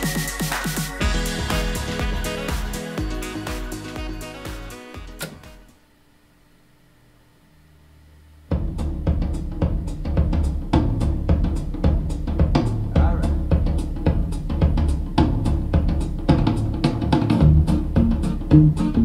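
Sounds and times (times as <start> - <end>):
drum-led music from cassette: 0.0 - 5.8, 8.5 - 19.0.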